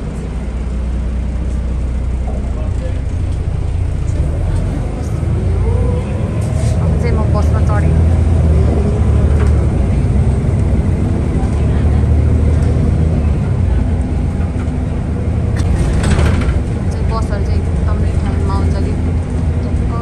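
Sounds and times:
bus engine and road rumble: 0.0s - 20.0s.

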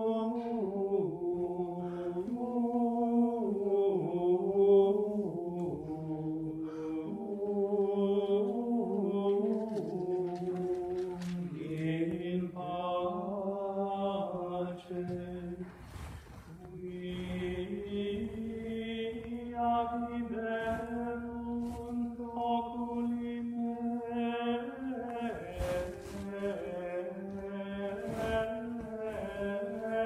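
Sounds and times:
plainchant singing: 0.0s - 30.0s.

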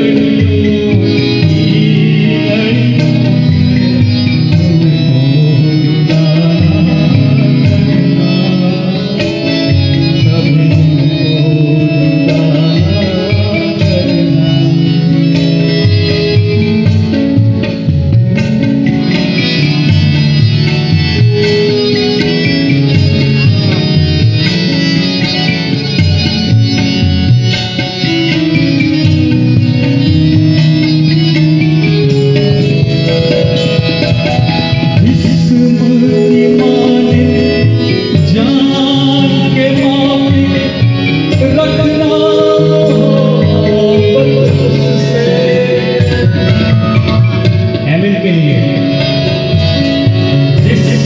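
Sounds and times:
hand drum: 0.0s - 51.0s
harmonium: 0.0s - 51.0s
keyboard accompaniment: 0.0s - 51.0s
plucked twangy banjo melody: 0.0s - 51.0s.

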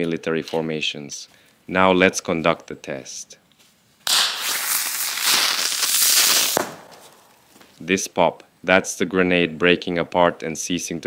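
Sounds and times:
smoke grenade hissing: 4.0s - 7.4s.

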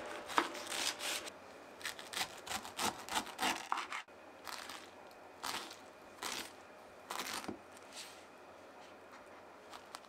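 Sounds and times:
knife sawing through pineapple: 2.0s - 4.1s.

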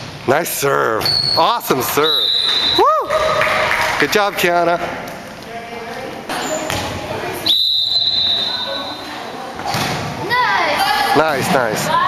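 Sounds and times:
referee's whistle blast: 1.0s - 2.8s, 7.4s - 9.0s.

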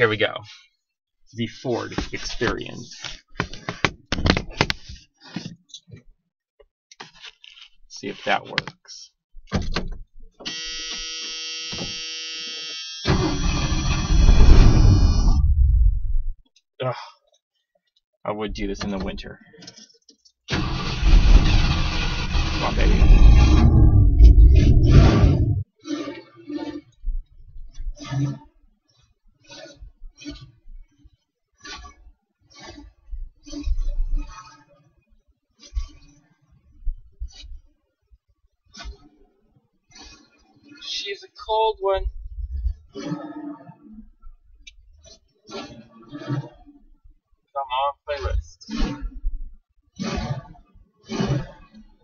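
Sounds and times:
phone handling knocks and clicks: 3.4s - 4.8s
engine starting and running roughly: 20.5s - 25.5s.

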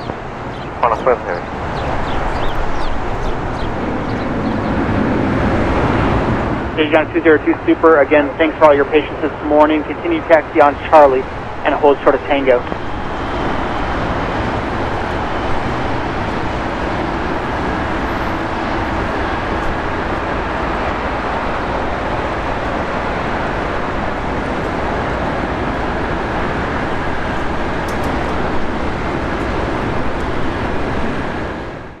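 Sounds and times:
jet engine noise: 0.0s - 32.0s.

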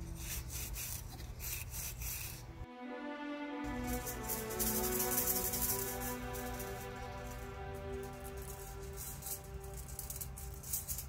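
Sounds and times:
soft background music: 2.4s - 11.0s
gold leaf crinkling: 3.7s - 11.0s.

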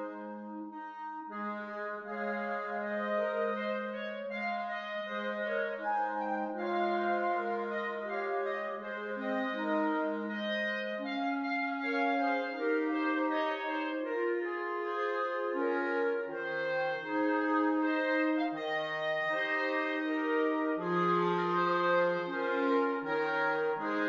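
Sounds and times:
clarinet quartet playing: 0.0s - 24.0s.

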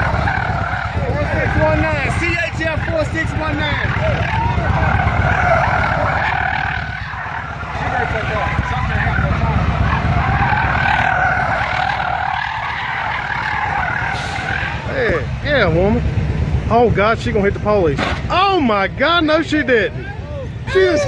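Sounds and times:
car tires squealing: 0.0s - 15.4s, 19.5s - 21.0s
person shouting: 19.9s - 21.0s.

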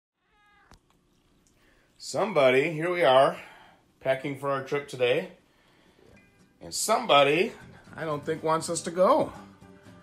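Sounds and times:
cat meowing: 0.2s - 0.9s.

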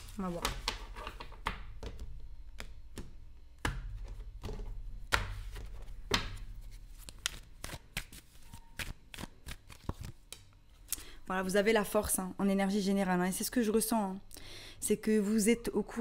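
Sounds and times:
cards being shuffled: 5.2s - 10.4s.

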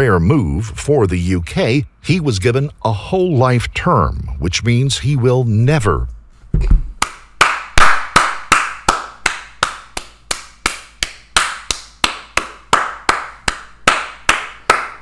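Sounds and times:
man clapping hands: 7.0s - 15.0s.

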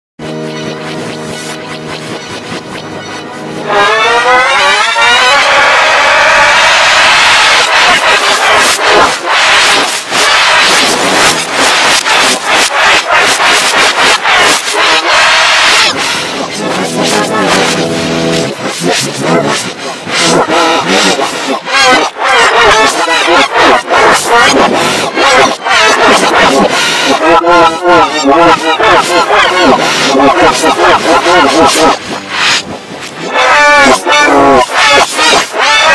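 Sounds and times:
harsh noisy blare: 0.2s - 35.9s
wavering voice-like sound: 15.1s - 22.2s, 27.1s - 35.9s.

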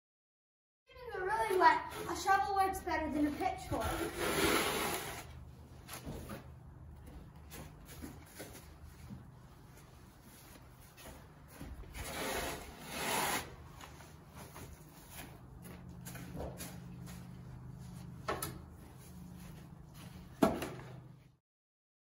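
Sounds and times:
shovel scraping wet wood shavings: 1.5s - 5.3s, 12.0s - 14.0s.

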